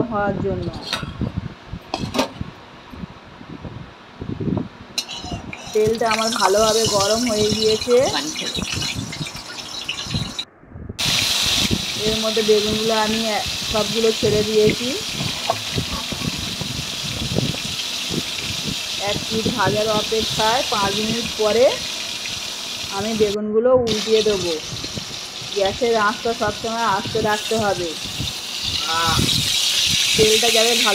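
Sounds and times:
eggplant frying in oil: 0:05.0 - 0:30.9
low uneven rumble: 0:10.1 - 0:29.4.

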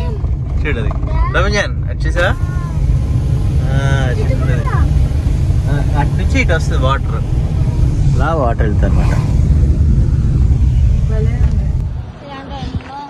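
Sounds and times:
road and engine rumble in car: 0:00.0 - 0:13.0.

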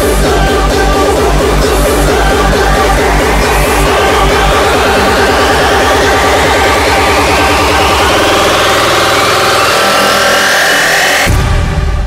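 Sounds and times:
rising synth sweep: 0:00.0 - 0:12.0.

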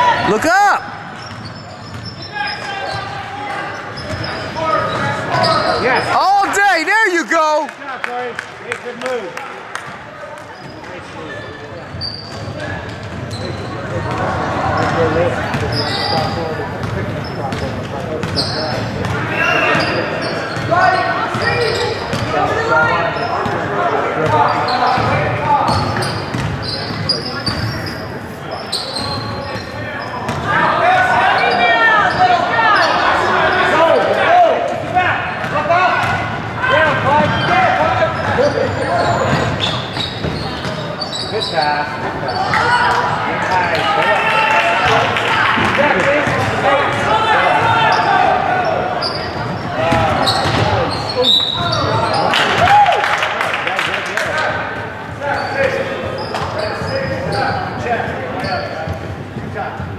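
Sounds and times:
echoing shouts and chatter: 0:00.0 - 0:59.9.

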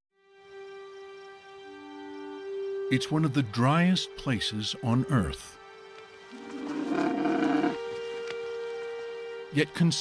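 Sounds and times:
background music: 0:00.2 - 0:10.0
camel grunting: 0:06.4 - 0:07.8.

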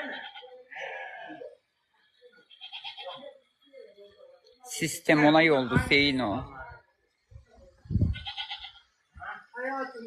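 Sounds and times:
goat bleating: 0:00.0 - 0:01.6, 0:02.5 - 0:03.3, 0:08.0 - 0:08.8.

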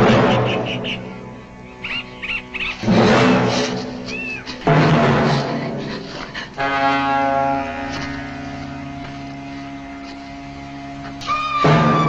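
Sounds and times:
orchestral horror score: 0:00.0 - 0:12.0
high wailing cry: 0:00.3 - 0:03.4, 0:04.0 - 0:04.6, 0:11.2 - 0:12.0
crash of low instruments: 0:02.8 - 0:09.0.

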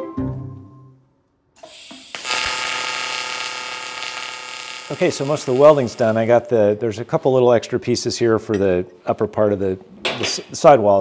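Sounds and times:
welding arc buzzing and hissing: 0:01.6 - 0:06.3
welding arc striking click: 0:01.6 - 0:06.3.

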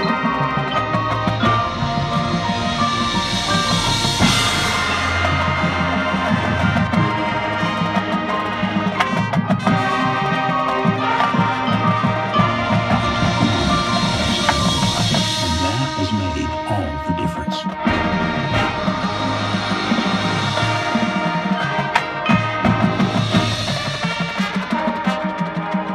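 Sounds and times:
sharp percussion hits: 0:00.0 - 0:25.8
brass chords: 0:00.0 - 0:25.9
marching drums: 0:00.0 - 0:25.9.

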